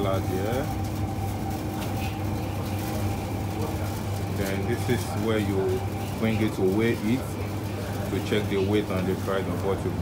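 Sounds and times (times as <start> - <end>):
refrigerator and ventilation hum: 0.0 - 10.0.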